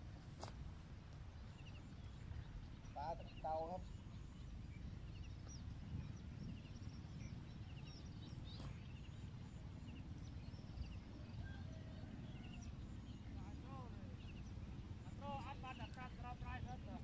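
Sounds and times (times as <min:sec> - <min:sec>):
steady low rumble: 0:00.0 - 0:17.0
small birds chirping: 0:01.2 - 0:17.0.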